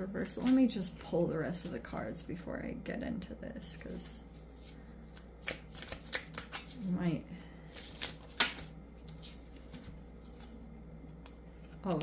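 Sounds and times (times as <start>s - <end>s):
cards snapping and flicking: 5.4s - 6.8s, 7.8s - 8.7s.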